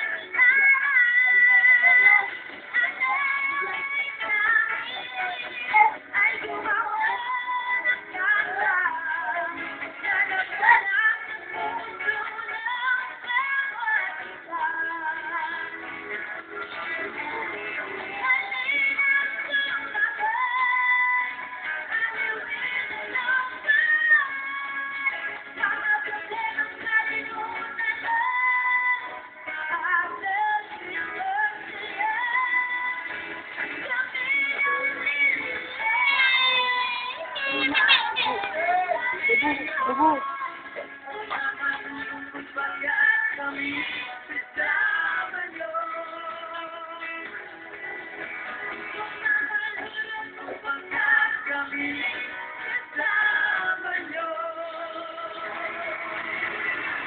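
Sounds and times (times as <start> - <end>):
boy singing: 0.0 - 15.6, 17.2 - 21.3, 21.9 - 25.0, 33.8 - 46.8
live band from tv speaker: 0.0 - 57.0.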